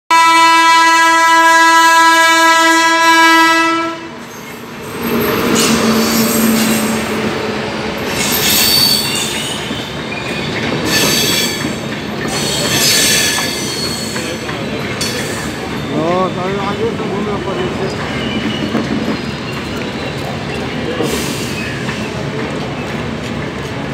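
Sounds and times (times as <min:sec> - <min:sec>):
locomotive air horn blast: 0:00.1 - 0:04.2
train rumbling past: 0:01.3 - 0:23.9
high-pitched wheel squeal: 0:04.2 - 0:07.2, 0:08.0 - 0:16.8.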